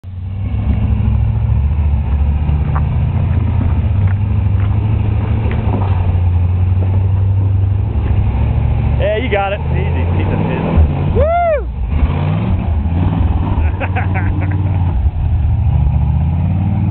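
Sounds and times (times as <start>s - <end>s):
truck engine running at low revs: 0.0s - 16.9s.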